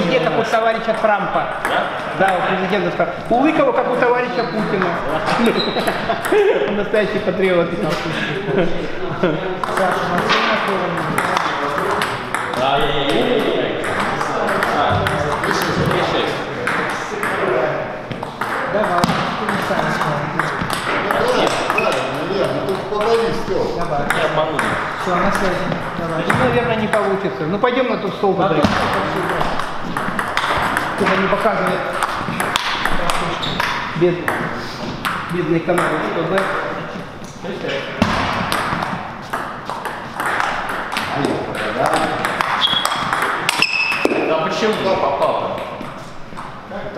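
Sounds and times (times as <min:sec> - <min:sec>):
men talking: 0:00.0 - 0:38.8, 0:40.2 - 0:46.9
table tennis ball taps: 0:09.6 - 0:17.4, 0:18.1 - 0:22.3, 0:24.0 - 0:27.1, 0:28.6 - 0:36.6, 0:38.0 - 0:44.2
table tennis ball clicking: 0:28.6 - 0:36.6, 0:38.4 - 0:44.2.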